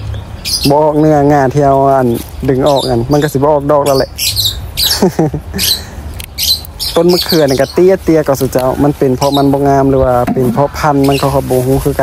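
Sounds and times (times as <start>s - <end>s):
high bird chirps: 0.0s - 8.0s, 9.2s - 11.4s.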